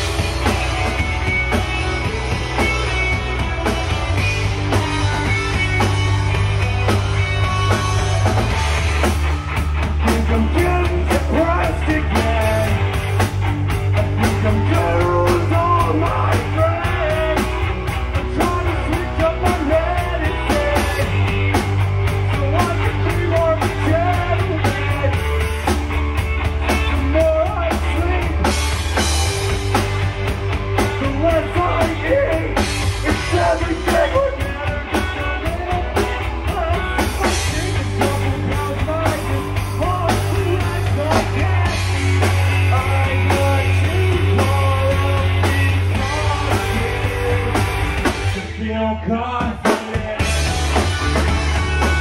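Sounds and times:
drum kit with cymbal hits: 0:00.0 - 0:52.0
electric bass: 0:00.0 - 0:52.0
electric guitar: 0:00.0 - 0:52.0.

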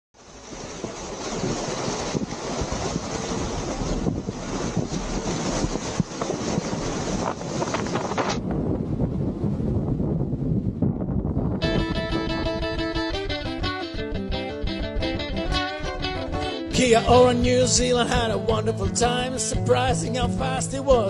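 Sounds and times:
rough sea waves breaking: 0:00.2 - 0:14.3
wind buffeting microphone: 0:00.2 - 0:16.5.

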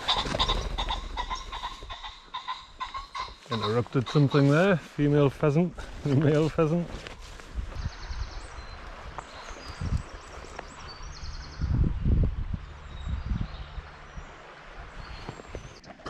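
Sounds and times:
footsteps through long grass: 0:00.0 - 0:11.7
grass rustling: 0:00.0 - 0:11.7.

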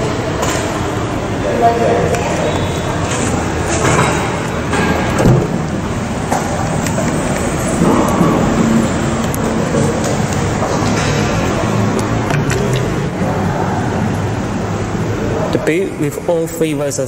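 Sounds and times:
continuous rumbling: 0:00.0 - 0:17.0.

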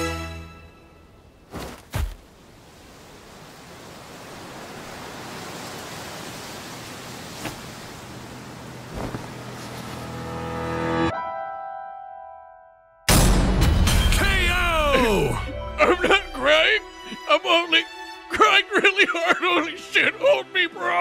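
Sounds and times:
dull thuds: 0:01.5 - 0:02.3, 0:07.3 - 0:08.0, 0:08.9 - 0:10.1.

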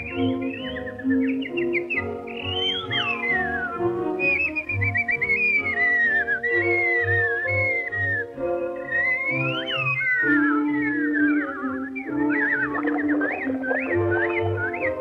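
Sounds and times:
whistled bird-like melody: 0:00.0 - 0:15.0
orchestral held chords: 0:05.6 - 0:15.0.

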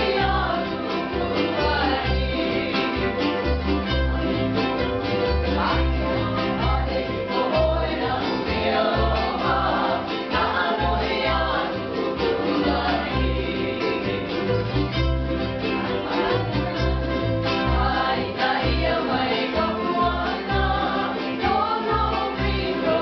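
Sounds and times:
bass line: 0:00.0 - 0:23.0
plucked strings: 0:00.0 - 0:23.0.

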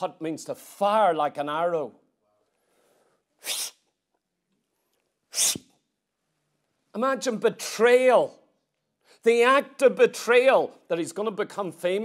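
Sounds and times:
man hissing breath bursts: 0:02.8 - 0:03.8, 0:05.3 - 0:05.7.

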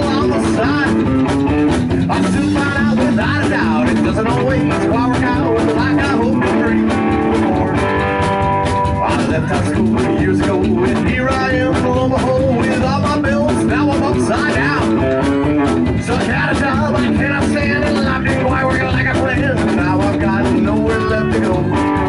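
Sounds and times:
drums: 0:00.0 - 0:22.0
electric guitar: 0:00.0 - 0:22.0
upright double bass: 0:00.0 - 0:22.0.

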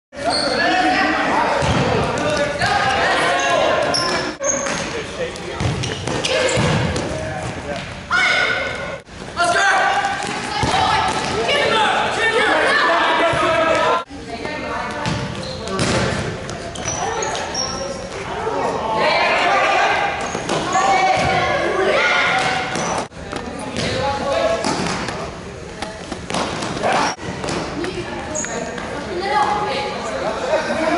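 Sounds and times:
shoes squeaking on floor: 0:00.2 - 0:00.8, 0:03.3 - 0:06.8, 0:15.1 - 0:18.3, 0:22.4 - 0:23.1, 0:28.2 - 0:29.0
ball thudding on hard court: 0:15.0 - 0:16.2
people calling out in a hall: 0:16.9 - 0:23.0.

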